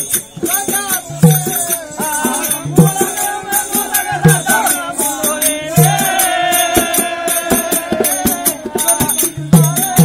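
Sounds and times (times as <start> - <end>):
hand drum rhythm: 0.0 - 10.0.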